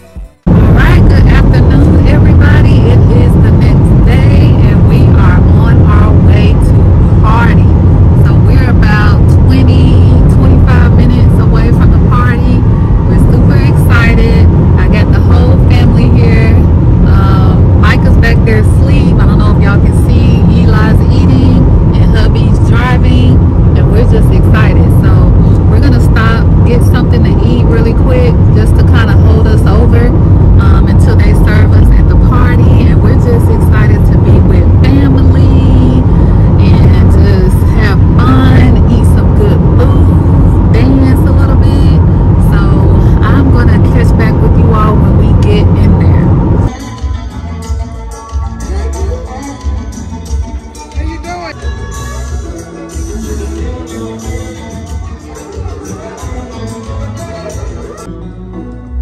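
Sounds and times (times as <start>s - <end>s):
loud low rumble: 0.0s - 46.8s
indistinct voices: 0.0s - 58.5s.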